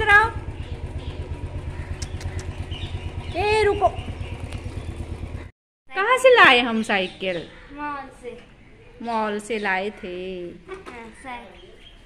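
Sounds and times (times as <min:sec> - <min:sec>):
small engine idling: 0:00.0 - 0:05.5.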